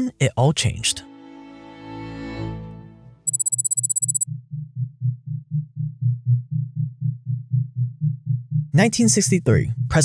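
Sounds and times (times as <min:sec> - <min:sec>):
deep pulsing bass: 0:04.3 - 0:08.8.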